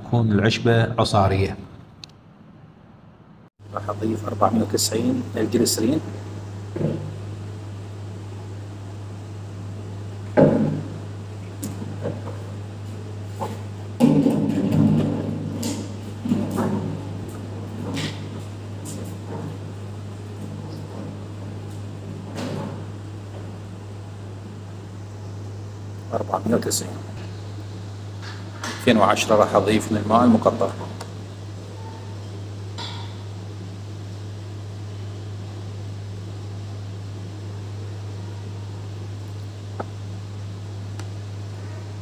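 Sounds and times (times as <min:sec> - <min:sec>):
steady low hum: 0:00.0 - 0:42.0.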